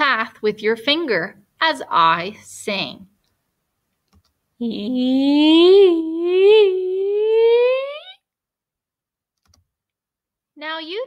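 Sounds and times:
woman singing rising pitch: 0:04.6 - 0:08.2.

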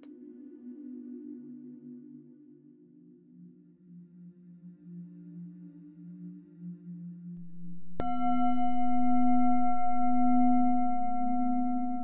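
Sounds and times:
singing bowl ringing: 0:07.4 - 0:12.0.

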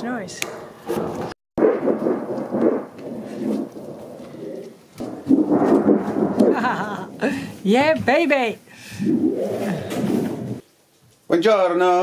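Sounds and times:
metal sheet wobbling rattle: 0:00.9 - 0:07.2, 0:09.1 - 0:10.6.

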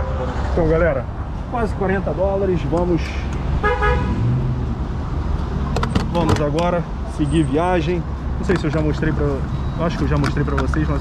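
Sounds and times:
car horn toot: 0:03.6 - 0:04.1.

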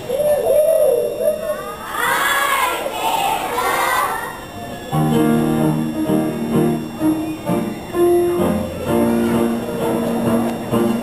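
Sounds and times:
children shouting and cheering: 0:00.0 - 0:04.5.

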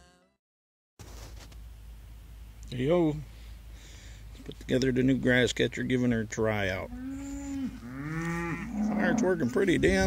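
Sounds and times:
cows mooing: 0:06.7 - 0:10.0.

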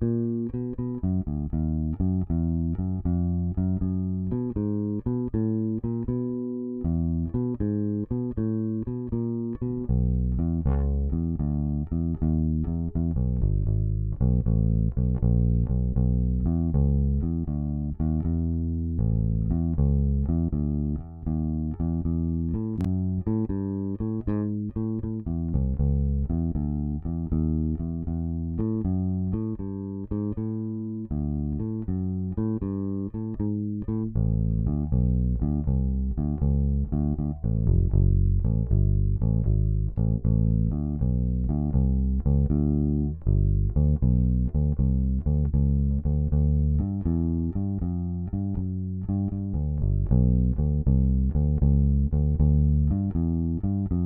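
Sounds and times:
plucked electric bass notes: 0:00.0 - 0:54.0.

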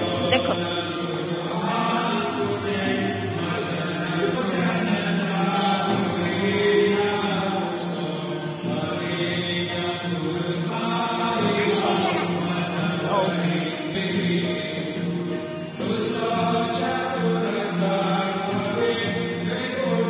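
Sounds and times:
devotional chanting: 0:00.0 - 0:20.0
music: 0:00.0 - 0:20.0.

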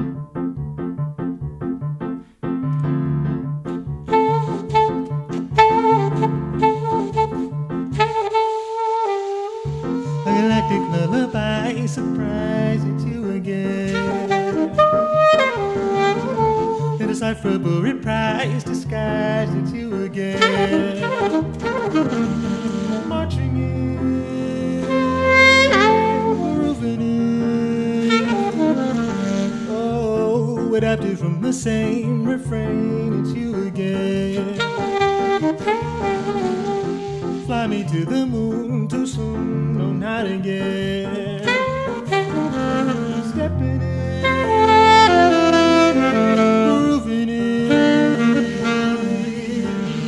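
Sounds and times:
alto saxophone melody: 0:03.6 - 0:17.6, 0:19.2 - 0:30.6, 0:34.2 - 0:38.3, 0:41.1 - 0:50.0.

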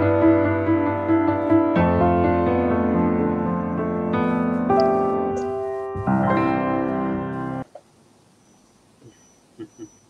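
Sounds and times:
piano chords: 0:00.0 - 0:07.7.

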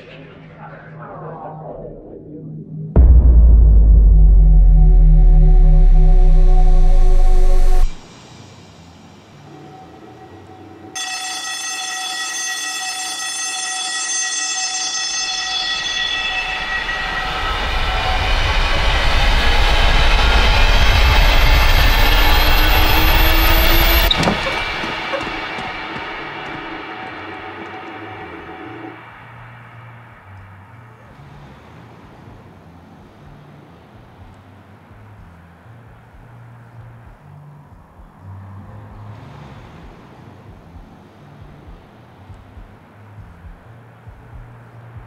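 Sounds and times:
deep rumble: 0:00.4 - 0:08.2, 0:16.3 - 0:31.0
sustained horn-like chord: 0:03.0 - 0:08.0.

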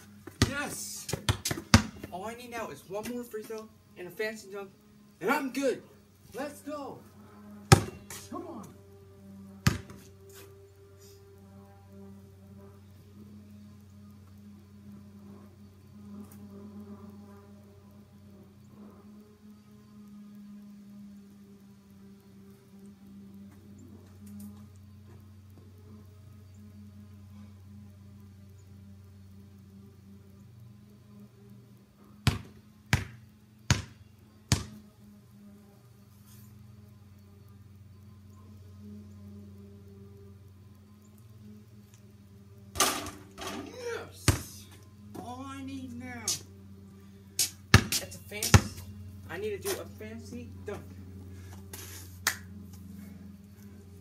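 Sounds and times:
low background music hum: 0:00.0 - 0:54.0
basketball bouncing on concrete: 0:00.2 - 0:02.2, 0:07.7 - 0:08.2, 0:09.6 - 0:10.1, 0:32.2 - 0:34.8, 0:44.3 - 0:44.5, 0:47.4 - 0:48.9.

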